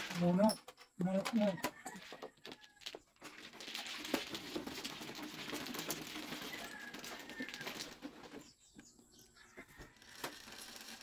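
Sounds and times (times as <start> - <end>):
plastic tiles clattering: 0.0 - 8.3, 9.9 - 11.0.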